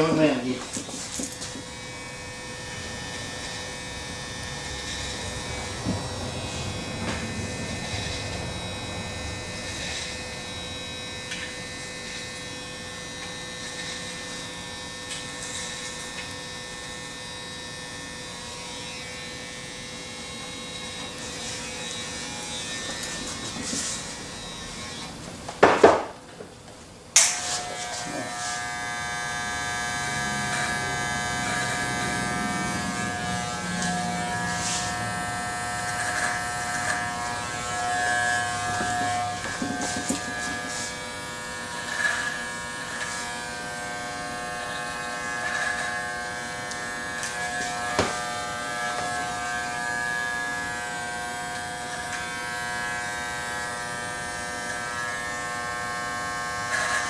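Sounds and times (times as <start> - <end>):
electric hair trimmer buzzing: 0.0 - 26.2, 27.1 - 57.0.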